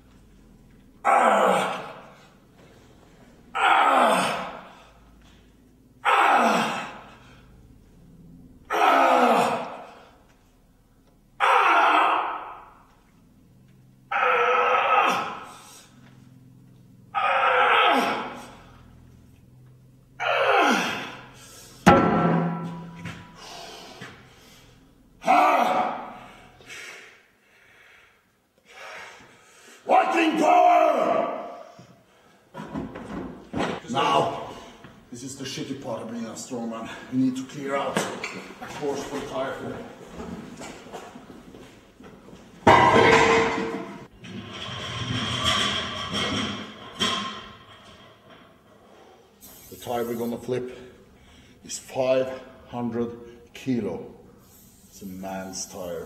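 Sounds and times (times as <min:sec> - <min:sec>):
man grunting and shouting: 0:01.0 - 0:02.1, 0:03.5 - 0:04.9, 0:06.0 - 0:07.1, 0:08.7 - 0:10.1, 0:11.4 - 0:12.6, 0:14.1 - 0:15.5, 0:20.2 - 0:21.3, 0:25.2 - 0:26.5, 0:29.8 - 0:31.8.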